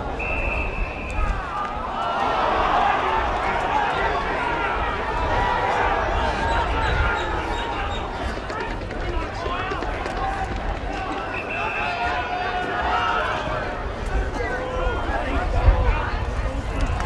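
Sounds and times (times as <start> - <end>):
crowd shouting: 0.0 - 17.0.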